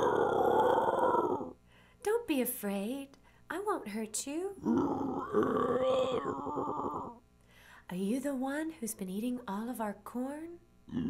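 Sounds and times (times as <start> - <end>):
bear growl: 0.0 - 1.6, 4.6 - 7.2.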